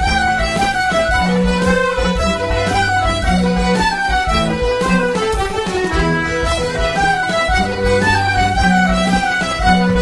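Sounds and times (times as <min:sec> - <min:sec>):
fiddles: 0:00.0 - 0:10.0
folk band playing a tune: 0:00.0 - 0:10.0.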